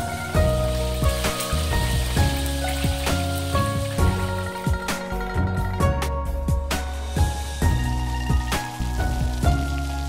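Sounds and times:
background music with beat: 0.0s - 10.0s
hot oil sizzling and bubbling: 0.0s - 10.0s.

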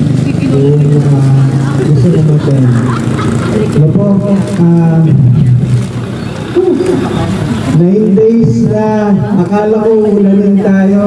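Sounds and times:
man talking over loudspeaker: 0.3s - 2.9s, 3.6s - 5.6s, 6.6s - 11.0s.

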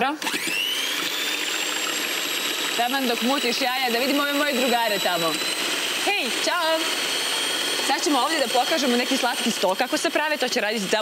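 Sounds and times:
electric hand mixer whining: 0.0s - 11.0s.

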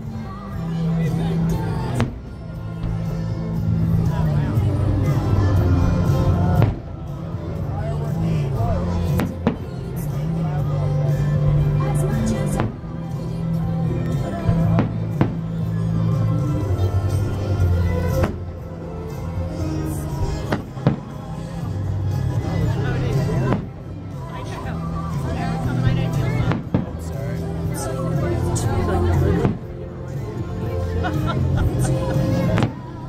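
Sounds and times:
people talking: 0.0s - 2.5s, 3.7s - 18.4s, 19.3s - 33.0s
music: 0.0s - 33.0s.

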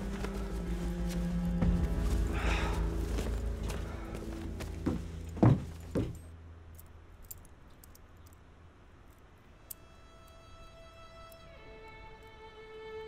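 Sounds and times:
soft sustained music notes: 0.0s - 7.2s, 9.3s - 13.0s
heavy thuds: 1.5s - 6.3s.

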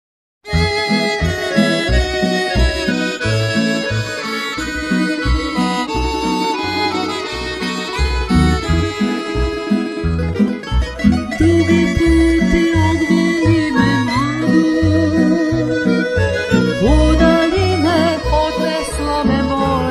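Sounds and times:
accordion: 0.4s - 19.9s
double bass pulse: 0.5s - 19.9s
plucked string instruments: 0.5s - 19.9s
violin: 0.5s - 19.9s.

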